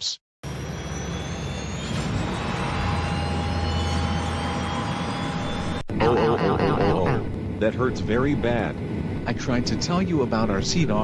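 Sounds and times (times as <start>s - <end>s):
jet engines whining: 0.4s - 11.0s.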